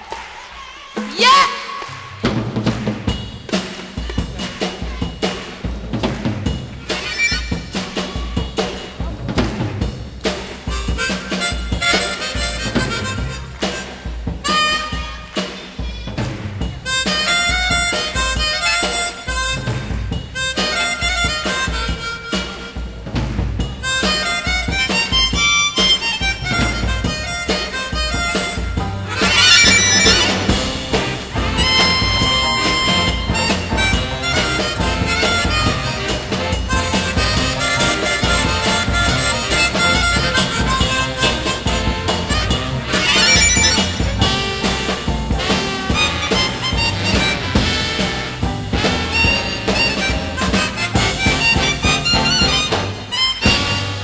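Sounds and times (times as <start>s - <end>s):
live band drums: 0.0s - 54.0s
harmonica playing soul-jazz melody: 6.9s - 7.8s, 10.7s - 15.4s, 16.9s - 23.0s, 23.8s - 54.0s.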